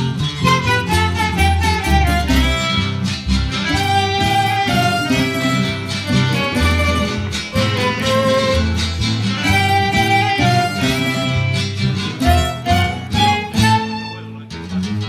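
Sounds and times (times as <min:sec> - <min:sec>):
violin melody: 0:00.0 - 0:14.5
bass: 0:00.0 - 0:15.0
strummed guitar: 0:00.0 - 0:15.0.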